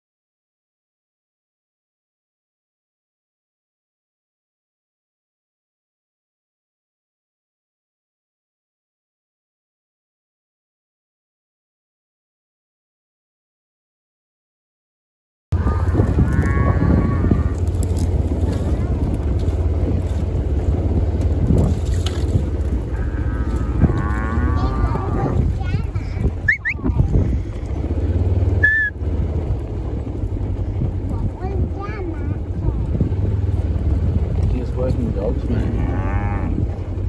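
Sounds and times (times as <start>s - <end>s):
steady low rumble: 15.5s - 37.0s
cattle lowing: 15.6s - 37.0s
sharp whistles: 26.4s - 27.0s, 28.6s - 29.0s.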